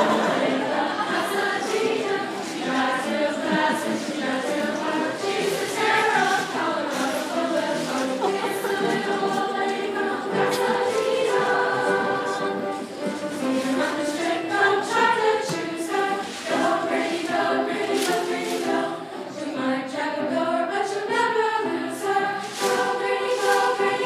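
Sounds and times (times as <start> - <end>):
chorus singing held notes: 0.0 - 24.0.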